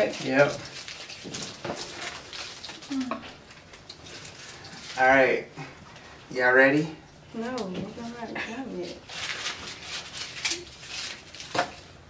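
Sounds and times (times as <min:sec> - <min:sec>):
plastic wrappers rustling: 0:00.0 - 0:05.3, 0:07.4 - 0:12.0.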